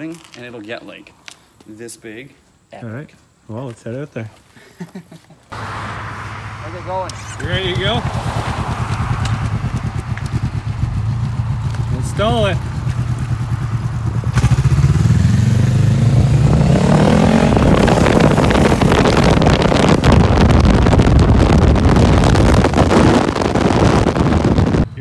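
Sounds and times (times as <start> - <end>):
motorcycle engine accelerating: 5.6 - 24.9
wind rush: 5.6 - 25.0.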